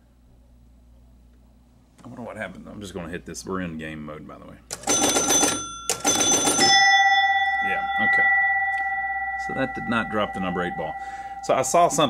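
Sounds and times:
pinball relays clattering: 4.7 - 6.8
pinball chime ringing: 4.7 - 12.0
lower chime ringing: 4.9 - 12.0.

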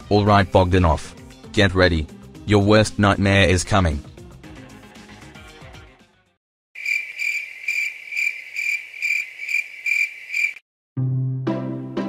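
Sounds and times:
crickets chirping: 6.8 - 10.6.

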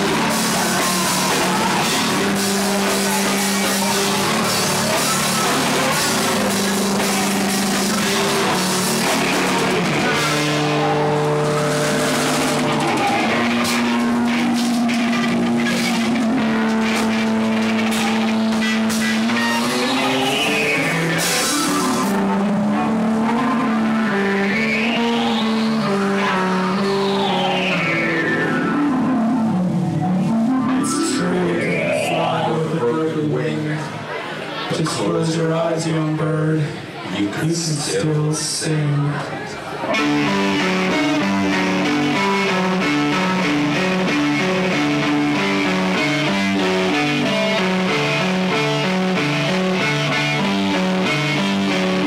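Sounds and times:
drums and cymbals: 0.0 - 22.4
live rock band playing: 0.0 - 34.7, 39.8 - 52.0
distorted electric guitars: 0.0 - 37.0, 38.0 - 52.0.

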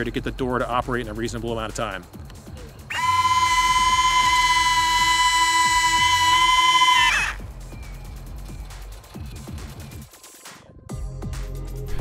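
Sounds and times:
background music with a beat: 7.3 - 12.0.

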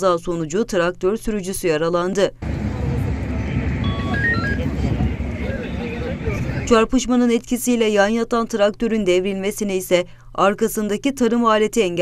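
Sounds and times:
faint voices: 2.4 - 6.8
street rumble: 2.4 - 6.9
high electronic beep tune: 3.8 - 4.7.

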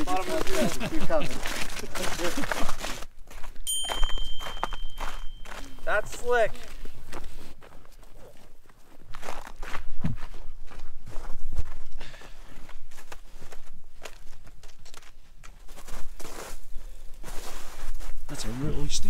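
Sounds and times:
footsteps on packed snow: 0.0 - 19.0.

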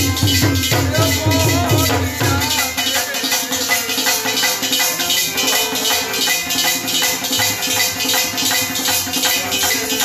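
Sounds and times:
jingling high percussion: 0.0 - 10.0
tabla drumming: 0.0 - 10.0.

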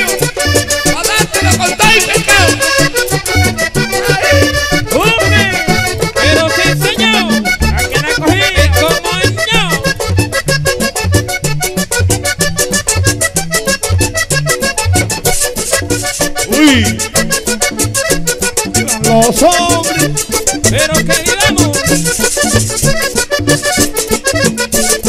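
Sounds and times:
bass line: 0.0 - 25.0
button accordion: 0.0 - 25.0.

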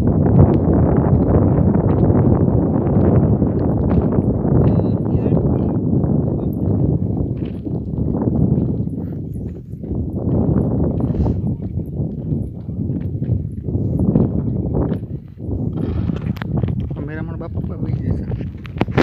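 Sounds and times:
hoofbeats on ploughed ground: 0.0 - 19.0
low rumbling noise: 0.0 - 19.0.

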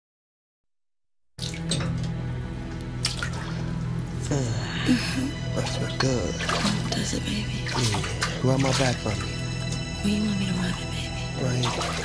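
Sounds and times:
music: 1.4 - 12.0
water sloshing and dripping: 1.4 - 12.0.

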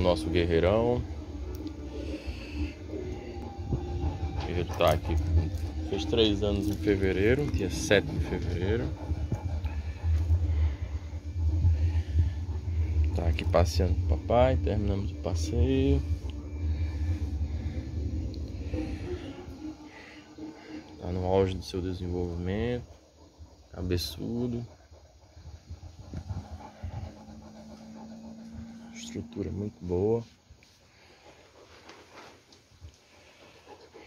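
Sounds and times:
low uneven rumble: 0.0 - 34.0
steady low hum: 0.0 - 34.0.

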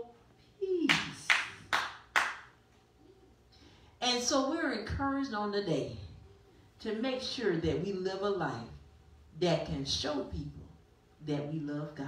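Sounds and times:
hand claps: 0.9 - 2.5.

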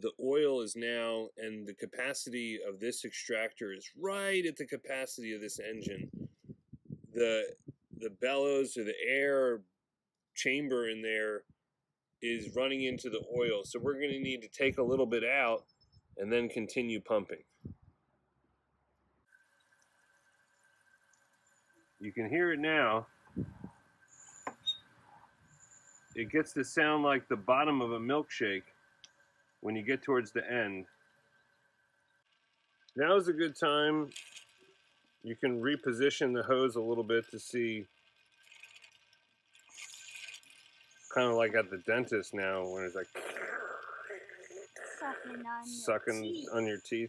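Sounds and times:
fluid extractor sucking oil: 19.3 - 45.1.

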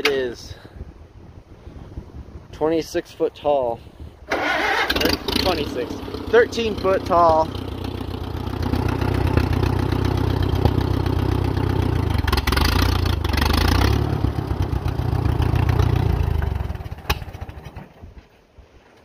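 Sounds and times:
tractor engine running: 4.3 - 18.2.

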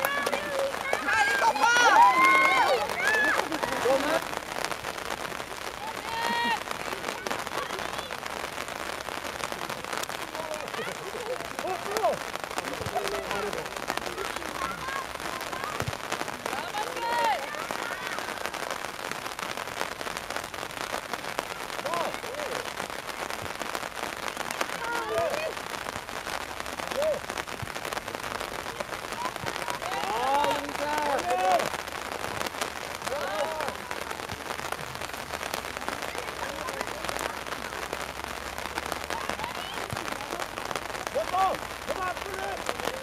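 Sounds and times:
young players shouting: 0.0 - 4.3, 5.8 - 8.2, 10.3 - 18.8, 21.4 - 22.7, 24.6 - 25.6, 28.7 - 31.7, 33.0 - 34.3, 39.1 - 40.5
crackling hiss: 0.0 - 43.0.

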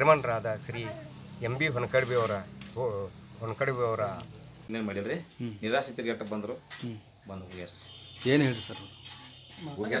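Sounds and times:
high rapidly pulsing chirp: 4.7 - 10.0.

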